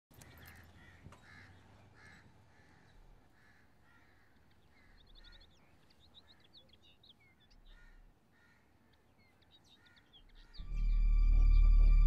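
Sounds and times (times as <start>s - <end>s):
crows cawing: 0.2s - 5.5s, 7.6s - 9.0s, 9.7s - 10.6s.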